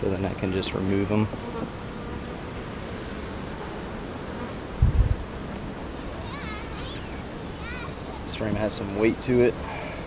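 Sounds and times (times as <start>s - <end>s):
honeybees buzzing: 0.0s - 10.0s
low thump: 4.8s - 5.2s.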